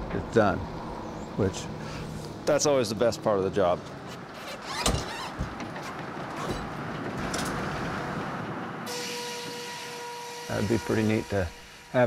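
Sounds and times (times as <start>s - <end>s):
sawmill machinery hum: 0.0s - 12.0s
clunk: 4.1s - 7.7s.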